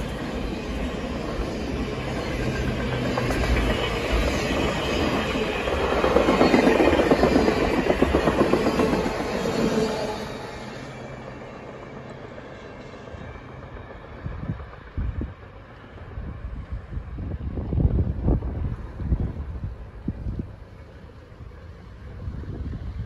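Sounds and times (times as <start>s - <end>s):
train rumble: 0.0s - 23.0s
wind buffeting microphone: 13.2s - 23.0s.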